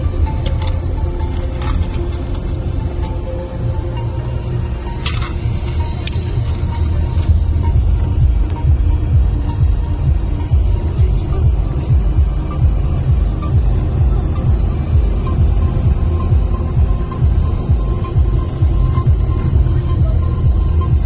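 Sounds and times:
car driving rumble: 0.0s - 21.0s
music with heavy pulsing bass: 0.0s - 21.0s.

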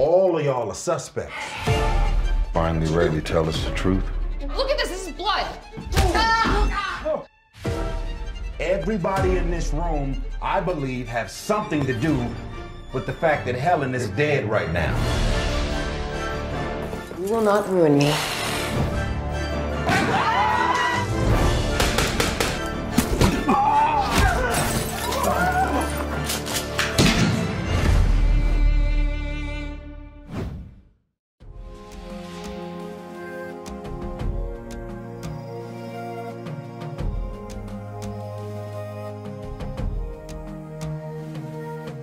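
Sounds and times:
music: 0.0s - 30.4s, 31.4s - 42.0s.

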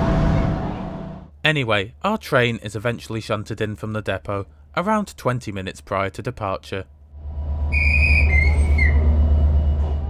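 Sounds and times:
train rolling with low rumble: 0.0s - 1.3s, 7.2s - 10.0s
high whistling squeal: 7.6s - 10.0s.

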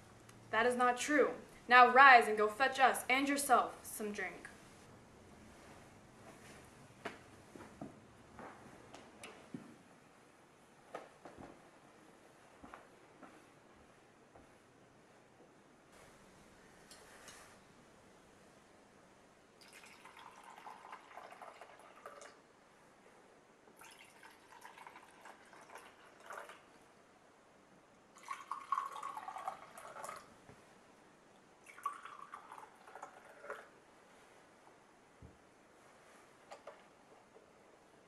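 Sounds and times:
liquid pouring into mugs: 19.6s - 22.4s, 23.7s - 26.8s, 28.2s - 30.3s, 31.6s - 33.8s.

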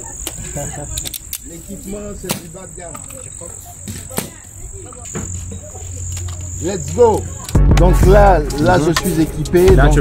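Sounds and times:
crickets chirping: 0.0s - 9.6s.

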